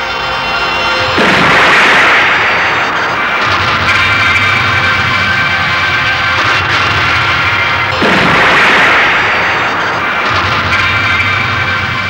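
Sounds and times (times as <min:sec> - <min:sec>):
theme music: 0:00.0 - 0:12.0
explosion-like boom: 0:01.2 - 0:12.0.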